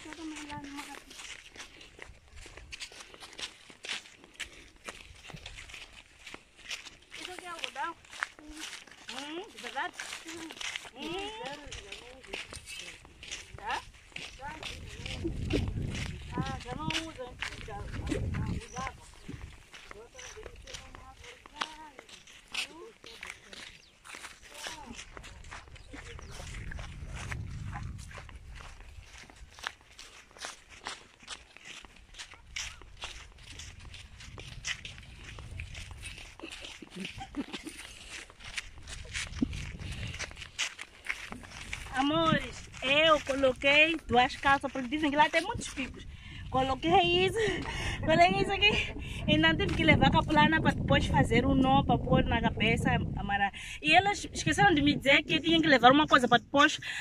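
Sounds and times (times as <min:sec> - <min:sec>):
footsteps on dry ground: 0:00.0 - 0:57.0
low rumble on microphone: 0:14.7 - 0:19.6, 0:24.8 - 0:29.3, 0:45.9 - 0:53.5.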